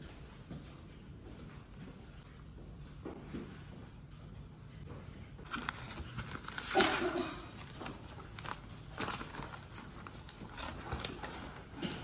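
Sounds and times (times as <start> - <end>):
paper rustling: 5.4 - 12.0.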